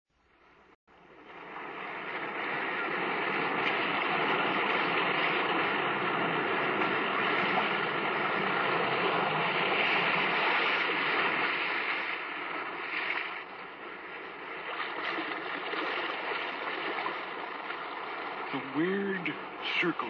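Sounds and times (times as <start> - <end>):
waves rushing: 1.0 - 20.0.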